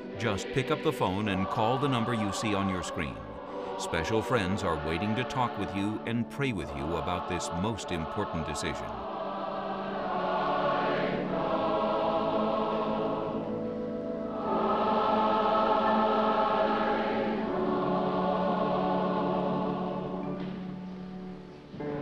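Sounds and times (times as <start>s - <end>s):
choir singing a hymn: 0.0s - 22.0s.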